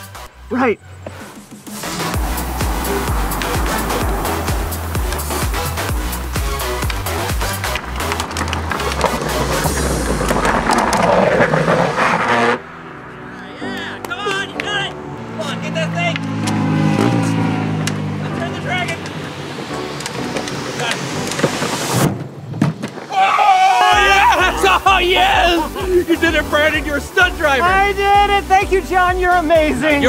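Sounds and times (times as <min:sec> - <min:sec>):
hard wheels scraping on asphalt: 0:00.9 - 0:13.3, 0:15.2 - 0:23.1.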